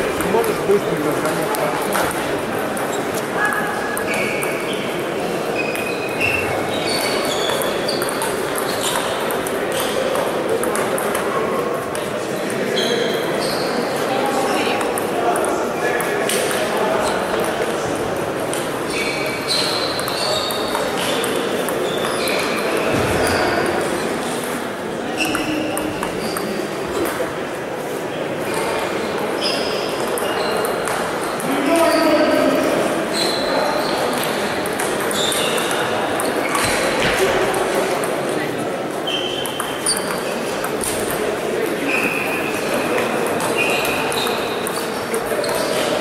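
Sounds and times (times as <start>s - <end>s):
table tennis balls pinging: 0.0s - 12.5s, 14.7s - 23.9s, 25.1s - 27.4s, 28.6s - 32.1s, 33.6s - 46.0s
din of busy sports hall: 0.0s - 46.0s.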